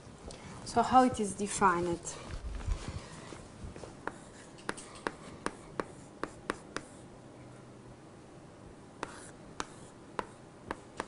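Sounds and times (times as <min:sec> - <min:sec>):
chalk taps and strokes on board: 0:04.0 - 0:07.0, 0:09.0 - 0:11.0.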